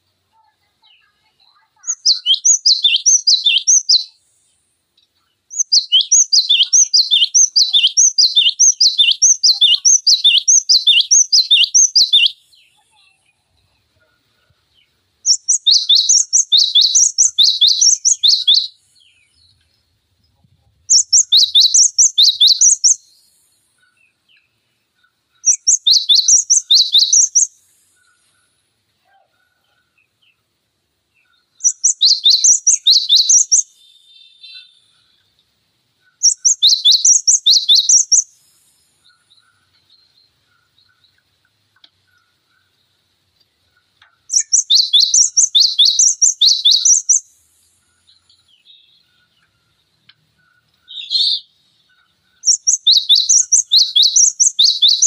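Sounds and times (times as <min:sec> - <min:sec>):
bird singing high notes: 0:01.3 - 0:04.1.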